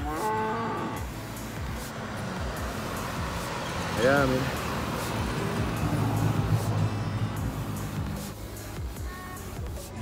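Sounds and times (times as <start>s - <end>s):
cow mooing: 0.0s - 1.1s.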